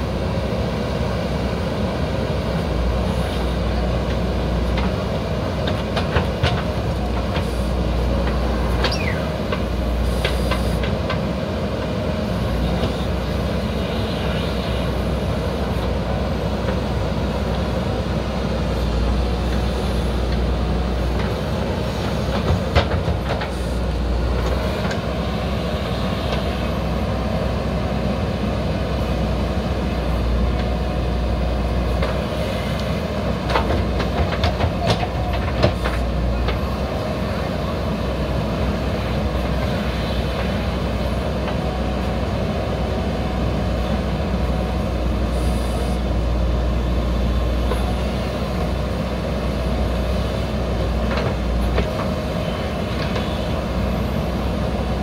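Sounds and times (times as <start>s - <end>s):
diesel engine under load: 0.0s - 55.0s.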